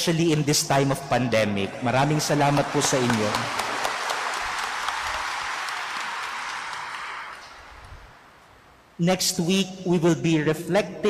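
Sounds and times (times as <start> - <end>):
crowd applauding: 1.6 - 8.3.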